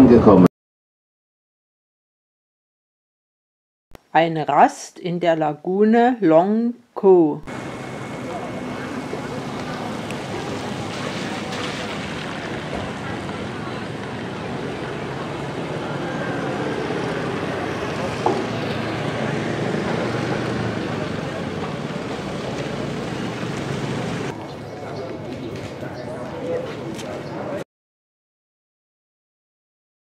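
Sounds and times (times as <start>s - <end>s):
steady rush of noise: 7.5s - 27.5s.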